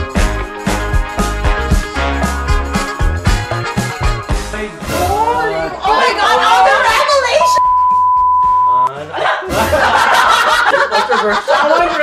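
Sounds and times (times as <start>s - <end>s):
overlapping talk: 4.5s - 7.6s, 8.9s - 12.0s
people laughing: 8.9s - 12.0s.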